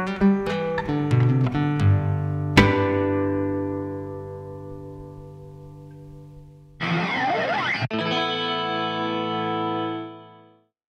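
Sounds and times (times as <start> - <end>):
classical guitar chord: 0.0 - 10.5
electronic sweeping pitch effect: 6.8 - 8.0.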